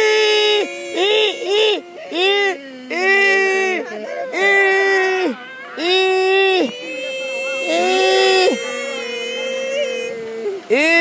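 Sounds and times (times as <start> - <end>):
woman wailing cries: 0.0 - 11.0
woman whimpering: 0.6 - 5.9, 6.5 - 10.7.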